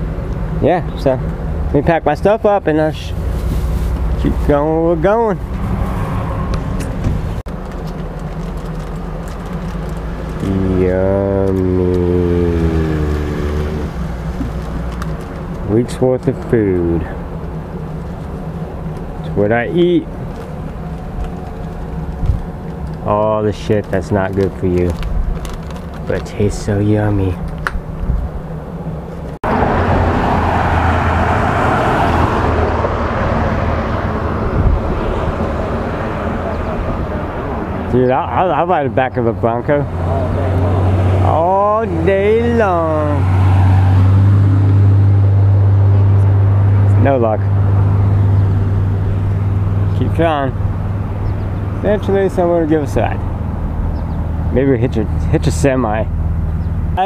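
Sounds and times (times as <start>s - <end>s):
louder engine hum: 0.0s - 57.0s
passing traffic: 0.0s - 57.0s
vehicle engine rumbling: 0.0s - 57.0s.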